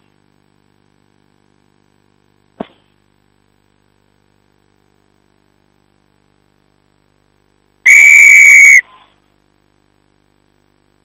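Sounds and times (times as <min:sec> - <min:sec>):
referee's whistle blast: 0:07.9 - 0:08.9.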